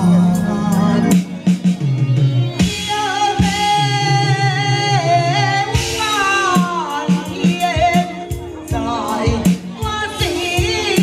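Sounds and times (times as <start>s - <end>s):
drum strikes: 0.0s - 11.0s
instrumental accompaniment: 0.0s - 11.0s
opera singing through microphone: 2.8s - 11.0s.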